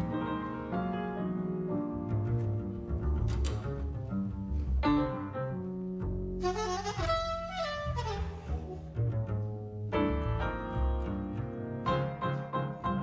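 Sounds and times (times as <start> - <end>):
piano chords: 0.0 - 13.0
double bass walking line: 1.7 - 13.0
soprano saxophone melody: 6.4 - 8.8.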